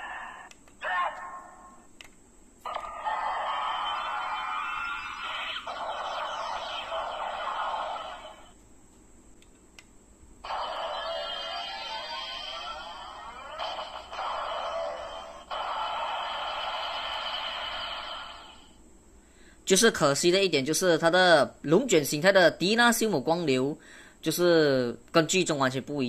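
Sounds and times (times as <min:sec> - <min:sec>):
electronic toy sound effects: 0:02.7 - 0:08.6, 0:10.4 - 0:18.7.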